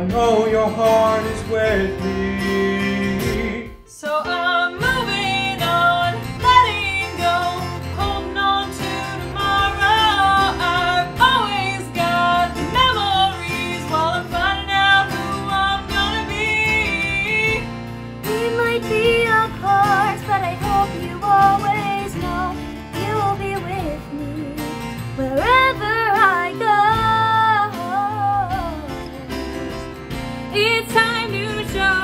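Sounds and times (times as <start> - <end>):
strummed acoustic guitar: 0.0 - 32.0
women singing pop ballad: 2.8 - 32.0.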